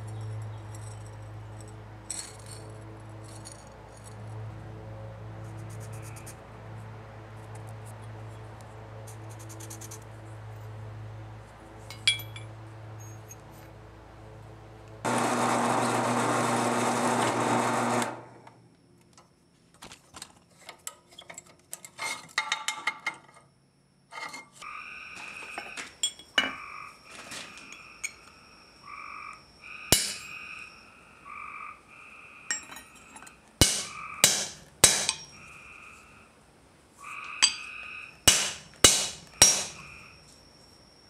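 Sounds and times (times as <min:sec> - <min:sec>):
hammer striking steel punch: 0:29.9 - 0:30.3, 0:33.6 - 0:35.3, 0:38.3 - 0:39.8.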